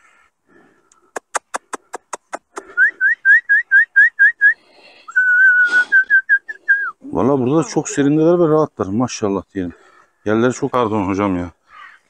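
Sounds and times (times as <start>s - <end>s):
mouth clicks: 0.8s - 3.7s
person whistling: 2.6s - 7.0s.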